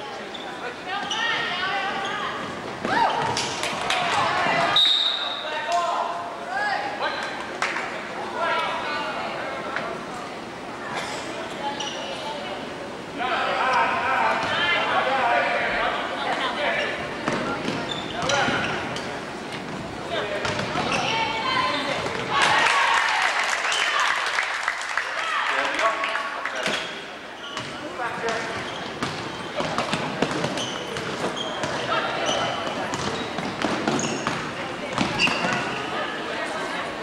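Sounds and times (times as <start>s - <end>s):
crowd chatter and shouting: 0.0s - 37.0s.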